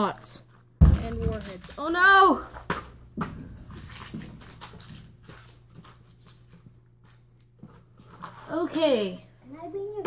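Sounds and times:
taps and rustles of handling: 0.1 - 9.1.

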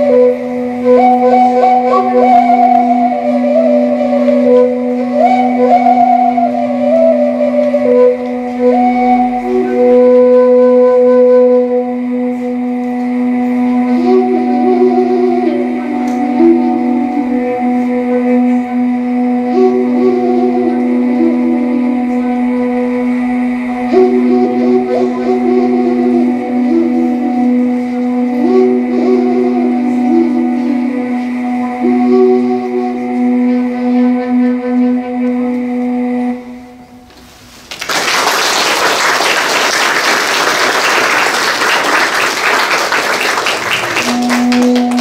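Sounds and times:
end-blown flute long note: 0.0 - 45.0
steady low drone: 0.0 - 45.0.

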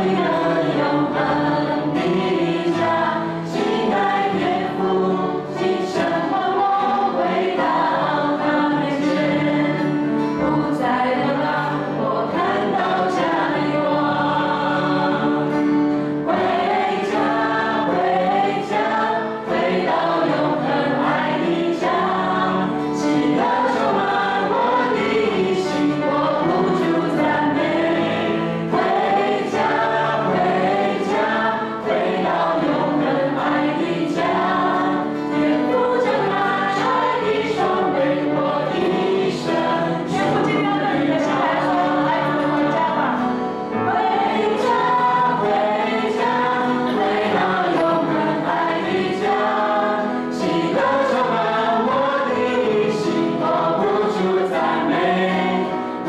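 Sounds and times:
acoustic guitar: 0.0 - 56.0
group singing praise song: 0.0 - 56.0.

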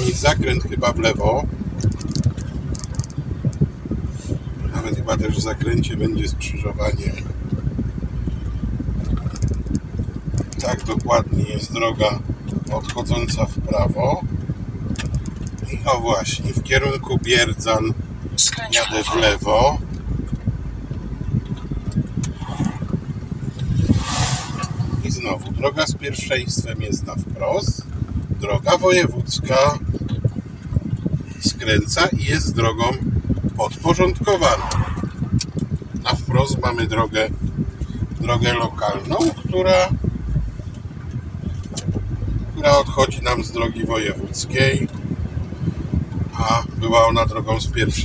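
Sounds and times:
car cabin rumble: 0.0 - 48.0
lorry passing whoosh: 22.2 - 25.6, 34.4 - 35.5.

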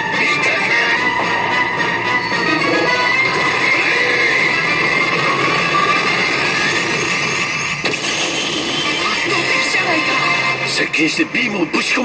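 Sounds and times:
pachinko parlour din: 0.0 - 12.0
pachinko machine sound effects: 2.2 - 10.7
sharp hit: 3.2 - 10.0.

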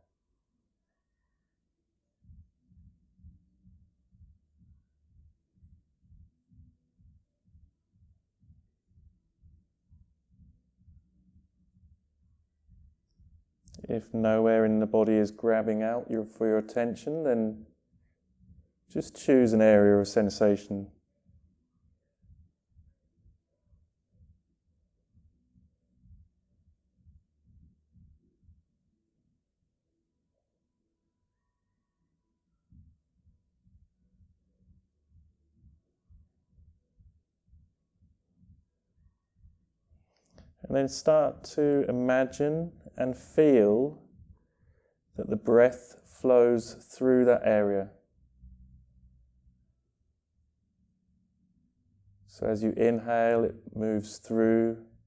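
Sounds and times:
soft low thumps: 2.2 - 13.8.

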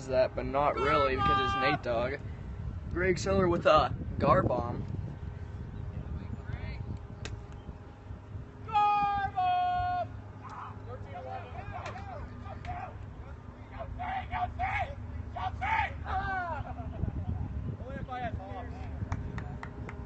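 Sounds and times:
person calling out loudly: 0.8 - 1.8.

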